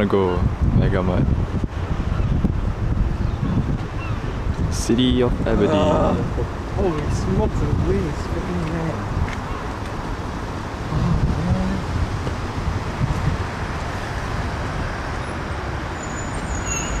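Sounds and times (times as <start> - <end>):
city street traffic rumble: 0.0 - 17.0
thin high squeal: 16.0 - 17.0.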